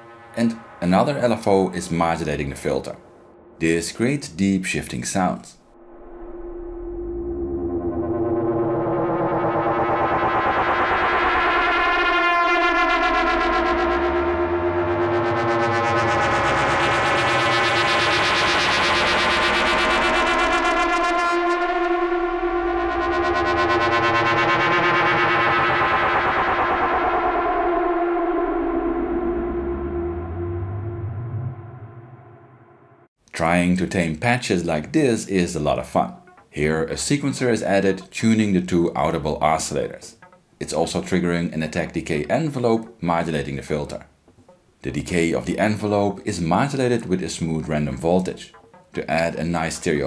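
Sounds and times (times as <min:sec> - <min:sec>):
synthesizer drone: 0:00.0 - 0:03.8, 0:05.6 - 0:33.1, 0:40.1 - 0:40.4, 0:48.5 - 0:49.0.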